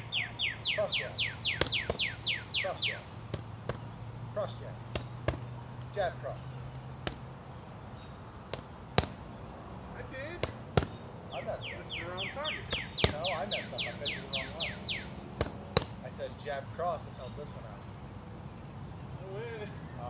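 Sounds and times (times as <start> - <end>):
bird chirping: 0.0 - 20.0
punches slapping focus mitts: 1.5 - 2.3, 3.1 - 5.6, 6.7 - 7.4, 8.4 - 9.4, 10.2 - 11.1, 12.5 - 13.5, 15.2 - 16.1.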